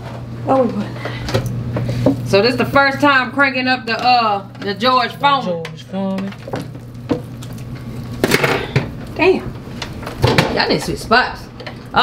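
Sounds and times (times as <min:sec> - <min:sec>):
steady low hum: 0:00.0 - 0:12.0
clatter of utensils and cookware: 0:08.2 - 0:08.9.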